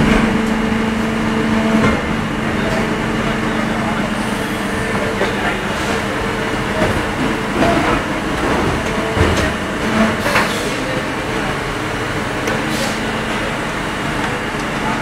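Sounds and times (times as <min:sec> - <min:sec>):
factory machinery hum: 0:00.0 - 0:15.0.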